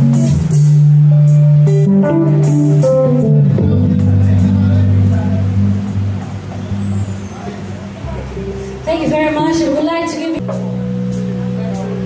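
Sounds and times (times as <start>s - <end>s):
live band sustained chord: 0.0s - 12.0s
low bass note: 0.0s - 12.0s
steady higher tone: 1.8s - 12.0s.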